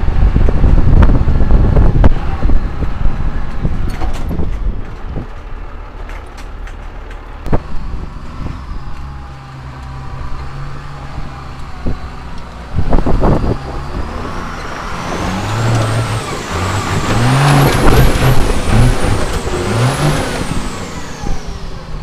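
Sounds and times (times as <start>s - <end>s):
diesel engine revving: 0.0s - 22.0s.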